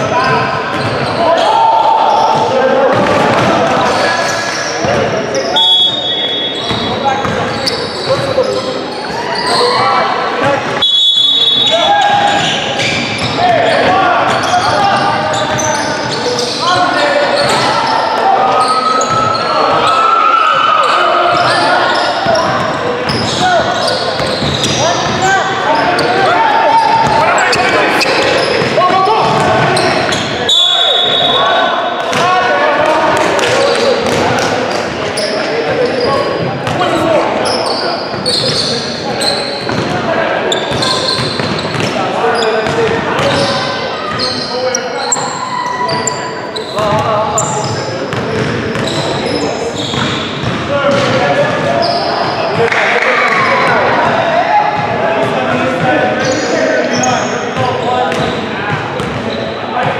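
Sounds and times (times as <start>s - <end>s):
players calling out: 0.0s - 59.9s.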